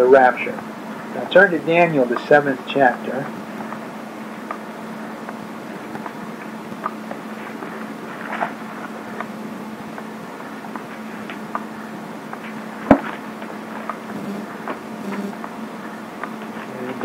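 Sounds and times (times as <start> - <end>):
low hum: 0.0 - 17.0
book pages turning: 6.8 - 9.3.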